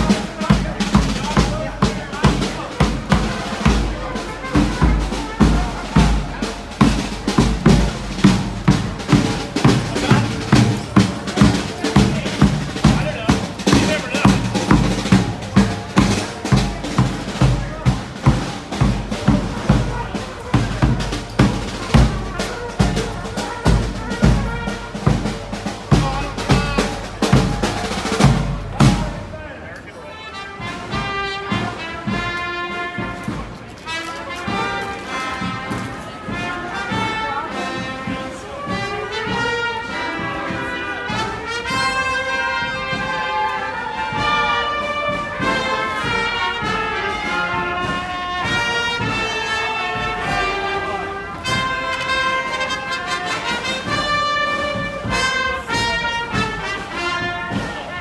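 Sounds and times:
brass band melody: 0.0s - 58.0s.

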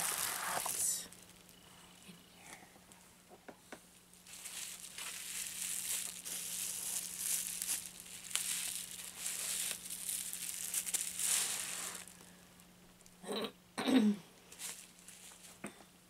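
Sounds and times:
plastic packaging crinkling: 0.0s - 1.6s, 4.0s - 13.2s, 14.5s - 15.6s.

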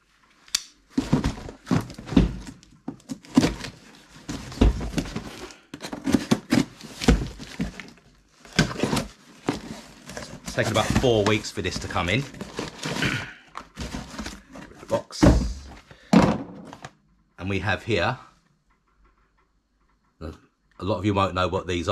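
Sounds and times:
cardboard scraping and tearing: 1.0s - 15.0s.

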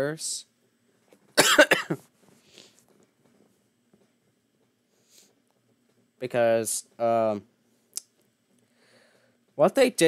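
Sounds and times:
man coughing: 1.4s - 2.0s.

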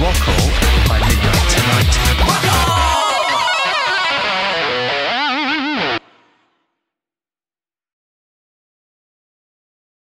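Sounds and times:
distorted electric guitar lead: 0.0s - 6.6s.

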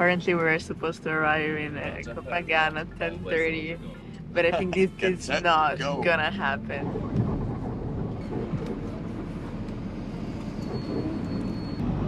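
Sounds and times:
road and engine rumble in a van: 0.0s - 12.0s.

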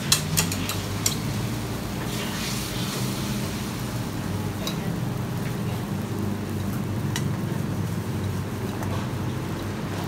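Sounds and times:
batter hissing in hot pan: 0.0s - 6.6s.

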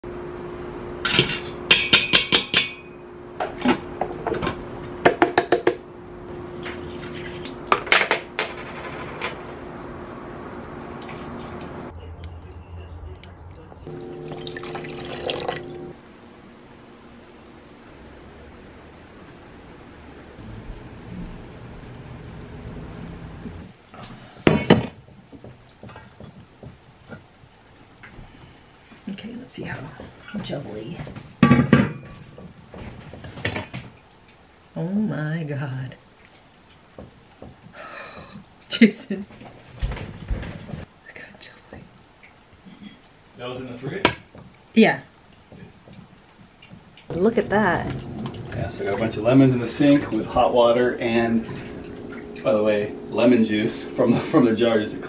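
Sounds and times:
steady low hum: 0.0s - 31.4s, 44.6s - 55.0s
utensils clinking against pots: 1.1s - 3.0s
broth being ladled and poured: 10.9s - 11.9s, 13.1s - 16.0s, 47.6s - 54.9s.

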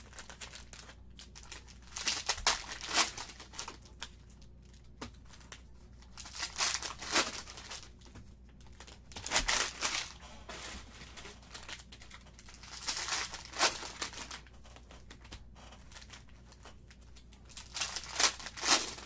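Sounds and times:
plastic wrappers crinkling and tearing: 0.0s - 19.0s.

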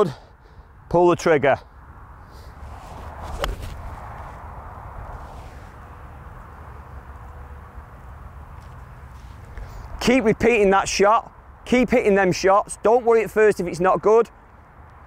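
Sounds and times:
outdoor background hiss: 0.0s - 15.0s
golf iron striking ball: 3.3s - 3.8s.

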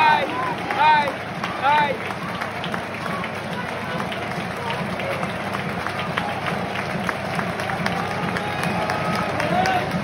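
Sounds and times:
hand claps: 0.0s - 10.0s
stadium crowd voices: 0.0s - 10.0s.

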